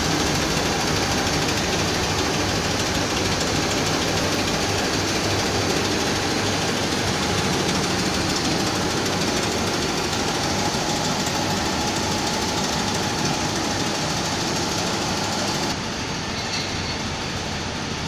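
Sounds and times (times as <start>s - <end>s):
shot blasting machine running: 0.0s - 15.8s.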